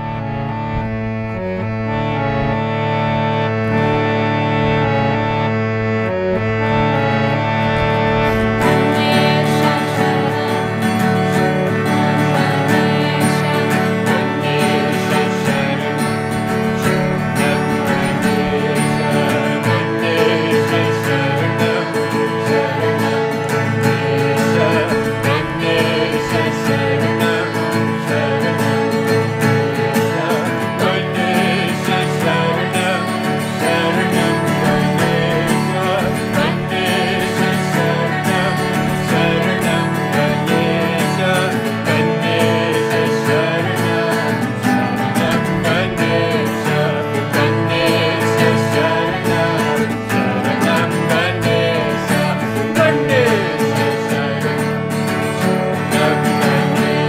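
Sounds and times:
harmonium sustained chords: 0:00.0 - 0:57.0
strummed acoustic guitar: 0:00.0 - 0:57.0
woman and man singing chant: 0:12.3 - 0:16.2, 0:23.9 - 0:29.0, 0:30.0 - 0:54.8.

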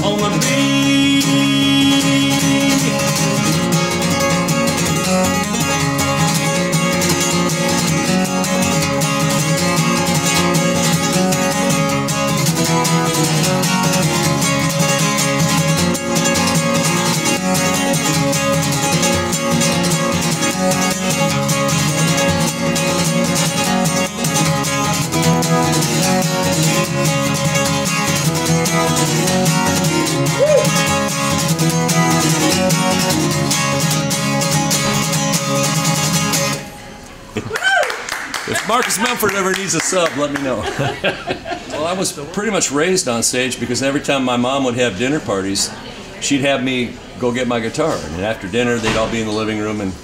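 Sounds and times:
bluegrass acoustic guitar: 0:00.0 - 0:37.5, 0:38.3 - 0:50.0.

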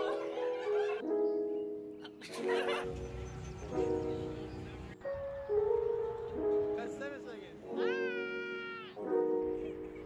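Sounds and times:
lo-fi piano chords music: 0:00.0 - 0:10.0.

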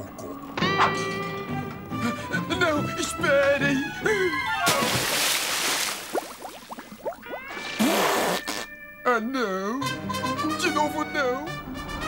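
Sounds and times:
water gushing spurt: 0:04.7 - 0:08.0
cartoon bubbling blips: 0:06.1 - 0:08.6.

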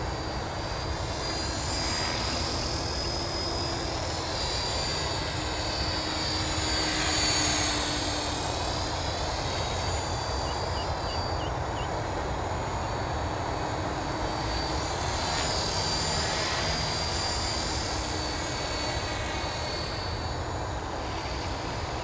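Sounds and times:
rc helicopter motor whine: 0:00.0 - 0:22.0.

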